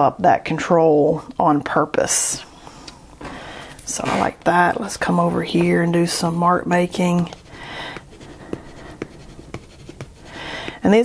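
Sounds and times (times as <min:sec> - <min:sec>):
pencil scratching on paper: 0:04.4 - 0:11.0.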